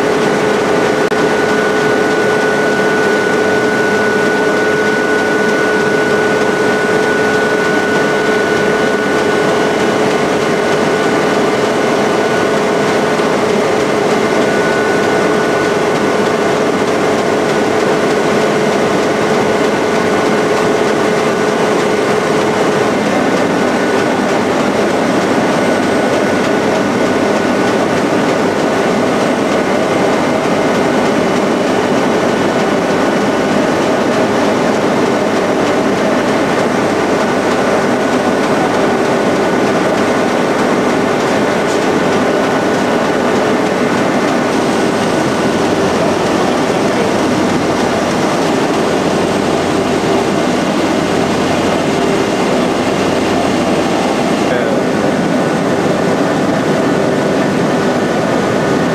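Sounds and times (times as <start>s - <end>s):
machine high whine: 0.0s - 58.9s
machine low hum: 0.0s - 58.9s.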